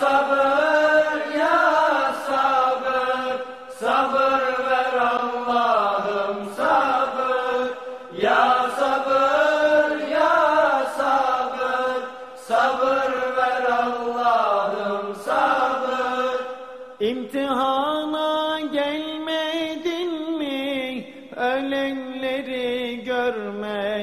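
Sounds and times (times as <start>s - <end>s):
solo voice singing a hymn: 0.0s - 24.0s
singer breathing: 3.4s - 3.8s, 7.8s - 8.2s, 12.1s - 12.4s.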